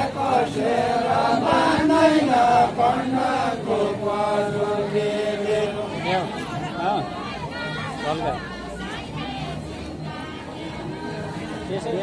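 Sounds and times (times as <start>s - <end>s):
men singing folk song in unison: 0.0s - 12.0s.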